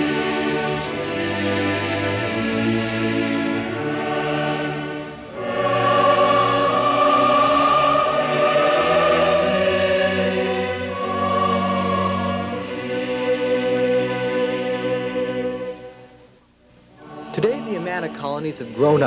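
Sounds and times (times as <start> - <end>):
choir singing long chords: 0.0 - 16.3, 16.9 - 19.0.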